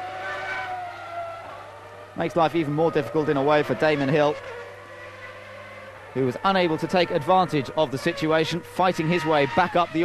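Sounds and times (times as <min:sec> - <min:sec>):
race car engine at high revs: 0:00.0 - 0:10.0.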